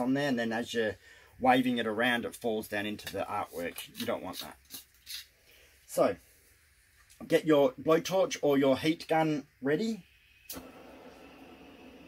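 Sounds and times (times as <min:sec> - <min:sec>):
blowtorch igniter click: 0:10.5 - 0:10.9
blowtorch hissing: 0:10.5 - 0:12.0.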